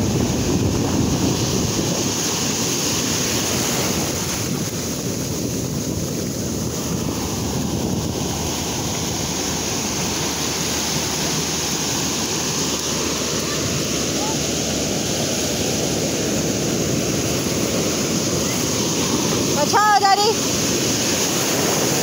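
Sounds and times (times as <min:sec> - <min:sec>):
ocean surf breaking on sand: 0:00.0 - 0:22.0.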